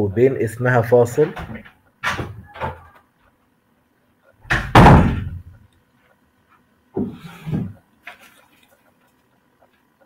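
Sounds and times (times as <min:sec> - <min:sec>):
heavy thumps: 0:04.4 - 0:05.6.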